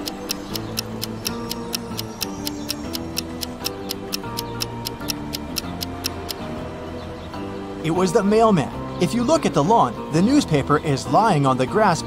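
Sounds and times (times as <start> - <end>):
clock-like ticking: 0.0 - 6.4
held-note melody: 0.0 - 6.6.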